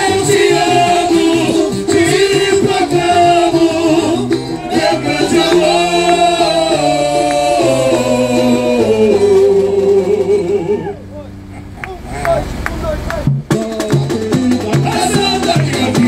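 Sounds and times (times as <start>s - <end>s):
men singing into microphones: 0.0s - 11.0s, 13.4s - 16.0s
amplified band with bass: 0.0s - 16.0s.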